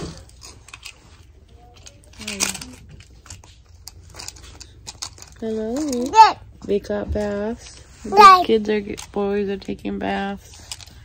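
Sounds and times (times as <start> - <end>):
plastic toy clicking and rattling: 0.0 - 6.5, 8.1 - 11.0.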